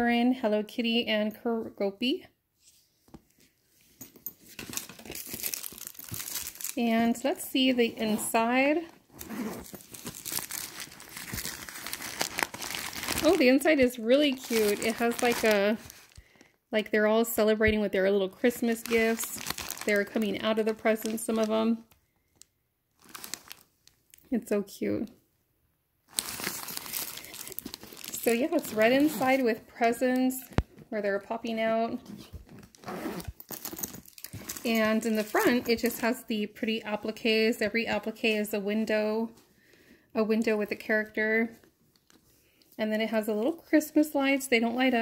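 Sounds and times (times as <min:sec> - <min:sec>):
paper crinkling and rustling: 0:04.4 - 0:06.8, 0:09.0 - 0:16.4, 0:18.4 - 0:21.9, 0:23.0 - 0:24.0, 0:26.1 - 0:29.5, 0:32.1 - 0:36.0
backpack rustling and scraping: 0:07.5 - 0:13.4, 0:27.7 - 0:29.6, 0:32.0 - 0:36.1.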